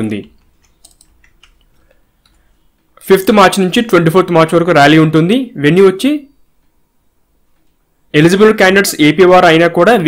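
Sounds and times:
man speaking: 0.0 - 0.4, 3.0 - 6.4, 8.1 - 10.0
computer keyboard clicks: 0.4 - 2.4.

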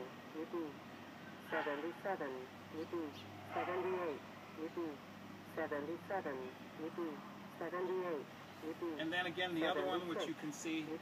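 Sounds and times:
synthesized voice announcing numbers: 0.0 - 0.8, 1.5 - 11.0.

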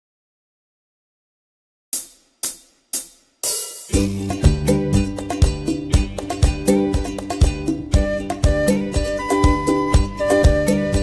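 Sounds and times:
open hi-hat hit: 2.0 - 7.7.

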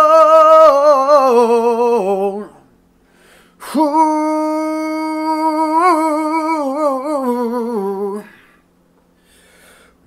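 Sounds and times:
man singing unaccompanied: 0.0 - 2.7, 3.6 - 8.4.

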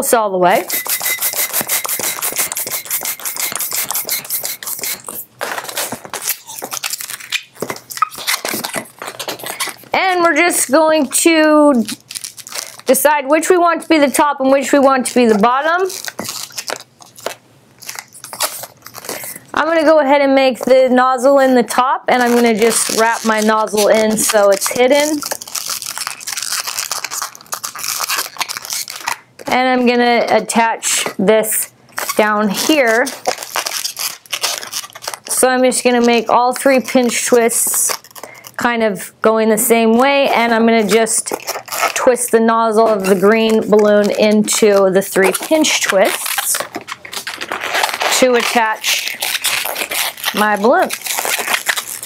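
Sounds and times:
balloon squeaking and rubbing: 0.5 - 38.8, 39.5 - 52.0.

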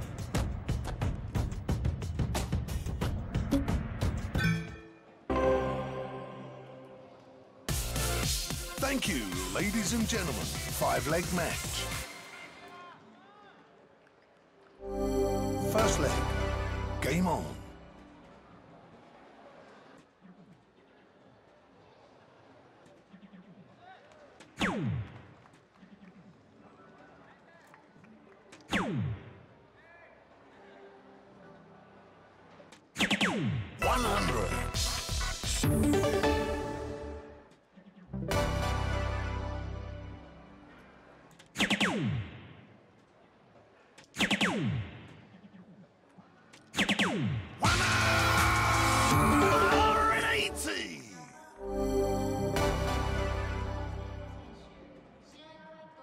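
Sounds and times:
award effect and music: 3.5 - 12.2, 14.8 - 18.1, 33.8 - 37.4, 38.2 - 40.3, 47.6 - 50.9, 51.6 - 54.6
murmur of voices: 29.5 - 33.0
darts hitting electronic dartboard: 33.0 - 33.6, 41.6 - 42.4, 44.2 - 45.1
dart machine hit sound: 41.6 - 42.3.

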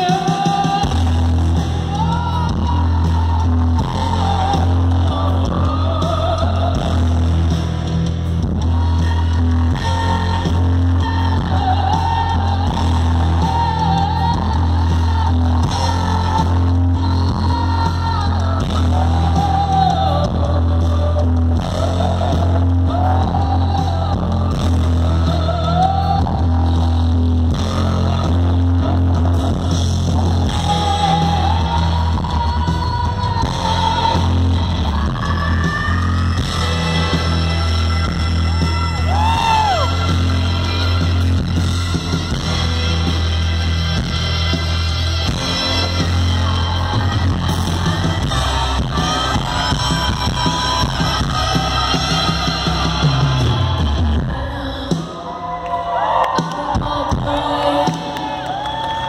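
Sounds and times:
live rock band playing: 0.0 - 55.4.

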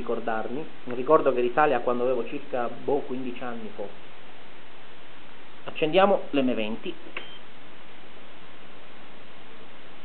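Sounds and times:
steady hiss: 0.0 - 10.0
brief high beep: 7.2 - 7.5.

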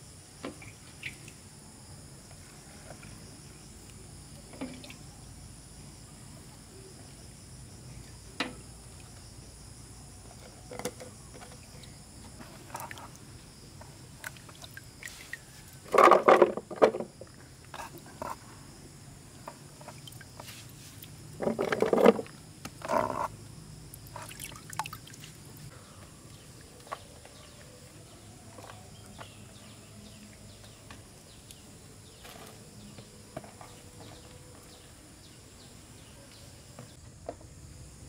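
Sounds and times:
insects droning: 0.0 - 38.0
water sloshing in a plastic basin: 10.4 - 18.3, 19.4 - 22.4, 23.9 - 25.7
plastic tubs and glass jars knocking: 15.8 - 17.2, 21.4 - 23.2.

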